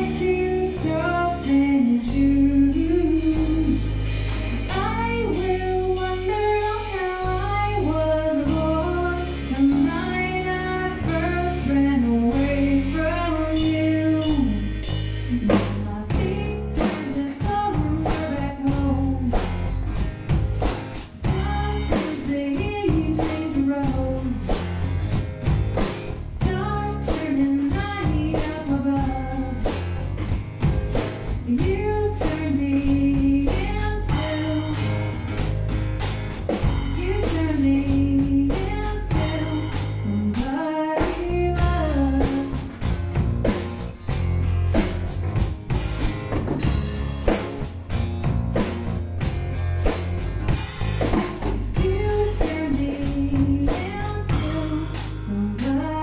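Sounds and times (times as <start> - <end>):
woman singing: 0.0 - 19.6, 21.2 - 24.8, 26.3 - 30.1, 31.4 - 35.2, 36.8 - 42.8, 51.5 - 56.0
acoustic guitar: 0.0 - 56.0
drum kit: 0.0 - 56.0.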